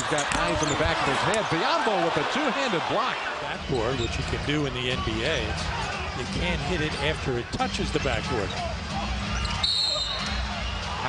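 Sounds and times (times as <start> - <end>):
arena crowd noise: 0.0 - 11.0
court sounds: 0.0 - 11.0.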